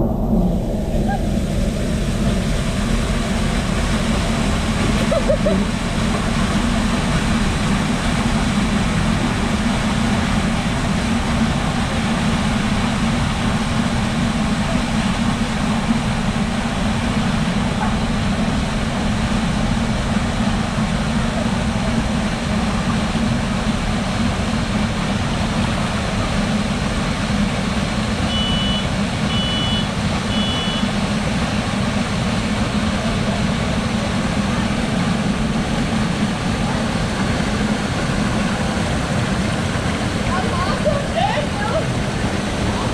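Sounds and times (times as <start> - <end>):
low drone: 0.0 - 42.9
raft rushing through water flume: 0.0 - 42.9.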